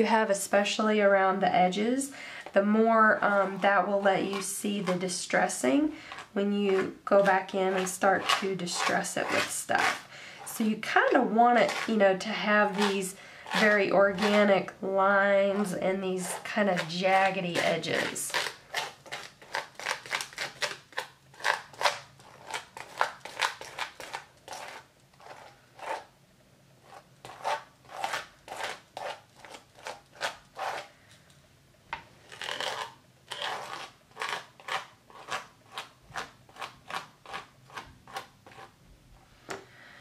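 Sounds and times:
palette knife scraping gritty gel: 0:01.7 - 0:26.1, 0:26.8 - 0:30.9, 0:32.2 - 0:38.8.

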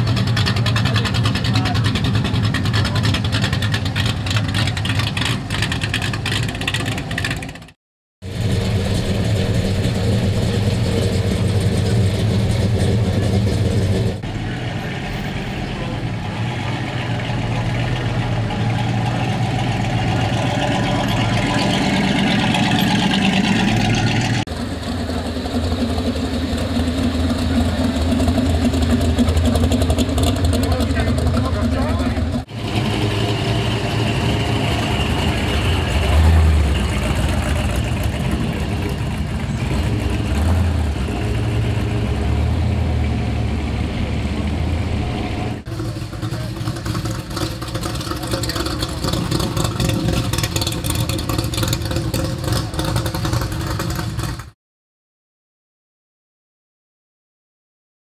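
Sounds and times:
people talking: 0:00.0 - 0:03.4, 0:14.4 - 0:19.4, 0:24.9 - 0:25.8, 0:30.5 - 0:32.5, 0:45.7 - 0:47.0, 0:48.0 - 0:49.2
car engines idling: 0:00.0 - 0:54.5.

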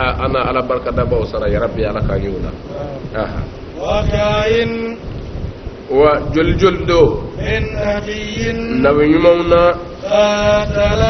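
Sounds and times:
man chanting melodic recitation: 0:00.0 - 0:05.2, 0:05.9 - 0:11.0.

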